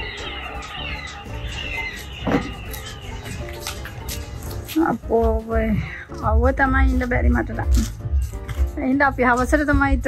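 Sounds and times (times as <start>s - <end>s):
birds chirping and warbling: 0.0s - 10.0s
quiet background music: 0.0s - 10.0s.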